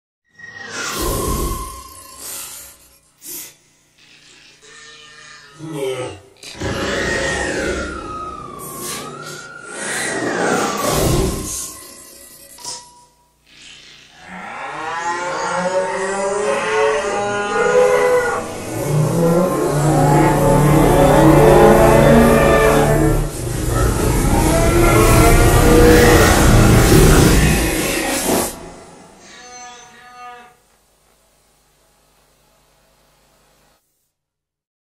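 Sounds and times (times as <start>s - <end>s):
whining robot tone: 0.3s - 2.8s, 4.0s - 12.8s, 13.4s - 30.6s
mechanical whir and clatter: 18.4s - 29.3s
faint steady hiss: 30.4s - 34.3s.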